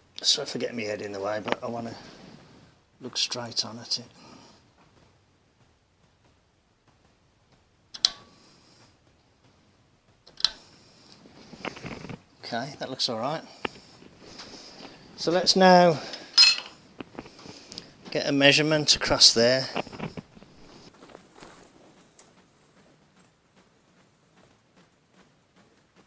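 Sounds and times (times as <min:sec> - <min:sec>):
soft rustling: 0:00.5 - 0:26.0.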